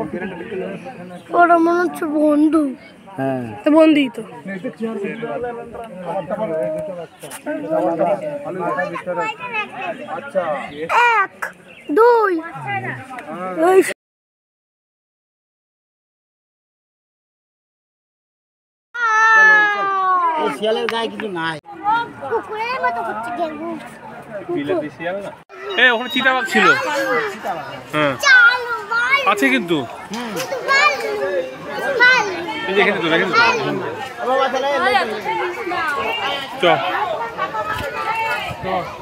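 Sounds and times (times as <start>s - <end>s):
people talking and calling out: 0.0s - 14.0s, 19.0s - 39.0s
children's voices: 1.2s - 4.3s, 8.5s - 13.9s, 19.0s - 21.0s, 21.7s - 24.0s, 25.5s - 39.0s
child crying: 19.0s - 20.5s.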